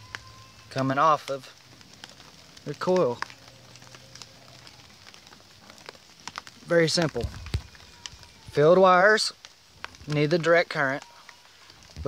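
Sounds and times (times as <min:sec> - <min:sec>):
faint ticks and crackles: 0:00.0 - 0:12.0.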